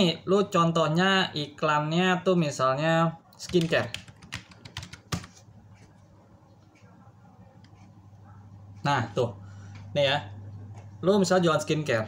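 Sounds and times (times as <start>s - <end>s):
keyboard typing: 3.3s - 5.9s.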